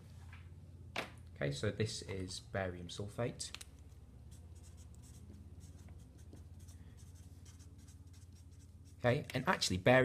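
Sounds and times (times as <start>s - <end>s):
low steady hum: 0.0s - 10.0s
marker scratching on paper: 4.3s - 9.1s.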